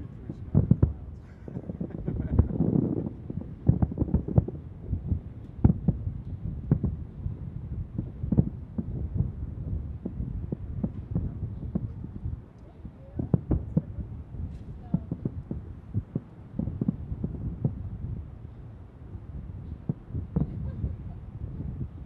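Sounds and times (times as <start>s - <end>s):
distant fireworks booming: 0.0s - 22.0s
low rumble: 0.0s - 22.0s.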